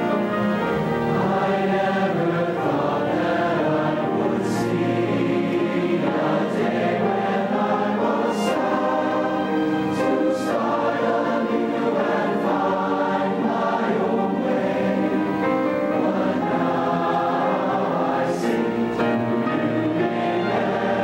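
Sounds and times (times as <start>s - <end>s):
large choir singing: 0.0s - 21.0s.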